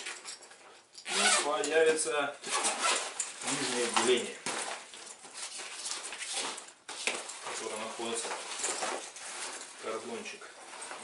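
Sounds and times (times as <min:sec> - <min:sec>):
nylon fabric rustling: 0:00.0 - 0:11.0.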